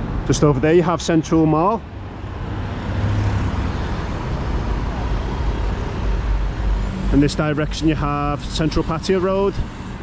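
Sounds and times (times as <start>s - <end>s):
cars and motorbikes driving past: 0.0s - 10.0s.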